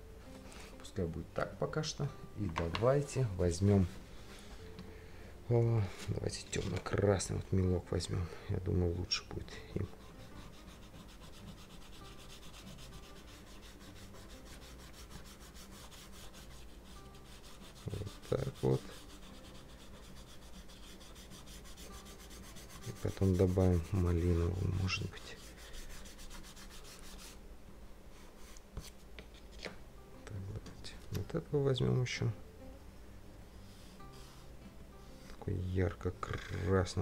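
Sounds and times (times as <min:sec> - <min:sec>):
crayon scribbling on paper: 0:09.8 - 0:27.4.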